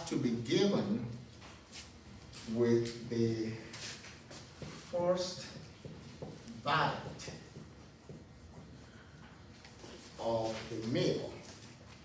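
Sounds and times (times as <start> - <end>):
marker scratching on whiteboard: 0.0 - 12.0.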